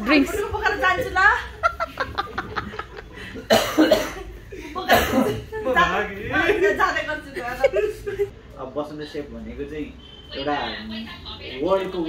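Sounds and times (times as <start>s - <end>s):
group of people laughing: 1.4s - 3.5s.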